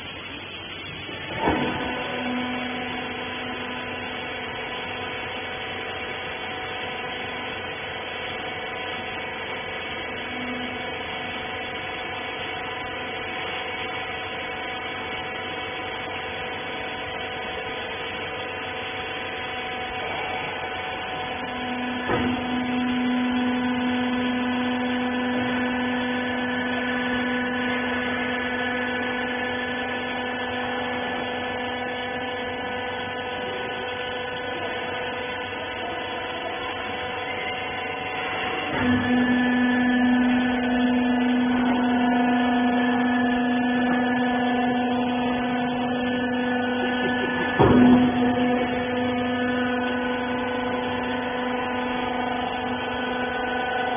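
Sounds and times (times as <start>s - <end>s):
machine motor hum: 0.0s - 53.9s
machine clunk: 1.2s - 2.1s, 22.0s - 22.6s, 45.8s - 50.5s
deep pump note: 18.2s - 53.9s.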